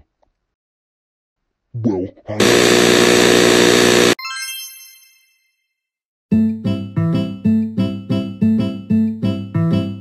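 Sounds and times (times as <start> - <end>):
harsh cartoon blare: 2.4 - 4.2.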